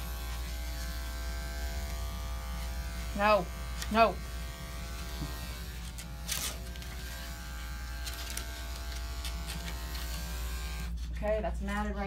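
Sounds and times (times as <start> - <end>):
electric clipper buzzing: 0.0 - 11.0.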